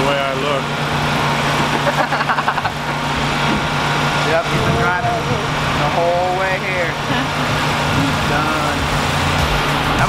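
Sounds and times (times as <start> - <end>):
vehicle engine idling: 0.0 - 10.0.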